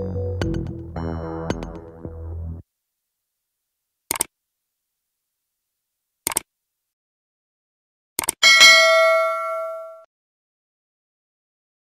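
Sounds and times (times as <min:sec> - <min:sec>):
quick clicks: 0:04.1 - 0:04.3, 0:06.3 - 0:06.5, 0:08.2 - 0:08.4
bright bell ding: 0:08.4 - 0:10.1.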